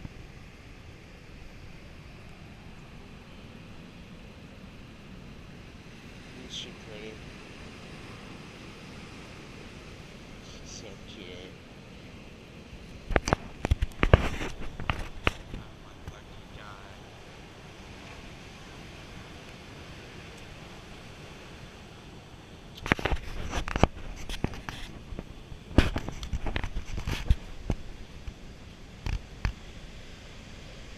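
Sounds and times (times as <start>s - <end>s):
ocean surf: 0.0s - 30.9s
wind: 0.0s - 30.9s.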